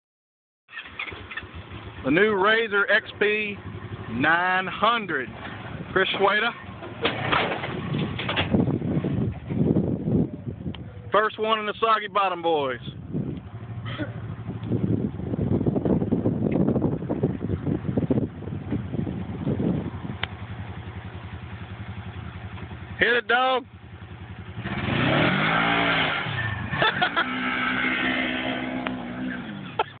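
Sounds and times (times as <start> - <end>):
engine low uneven rumble: 0.7 - 30.0.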